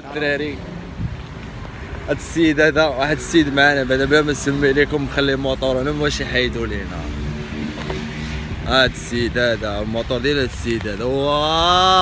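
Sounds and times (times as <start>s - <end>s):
men talking: 0.0s - 0.9s, 1.8s - 12.0s.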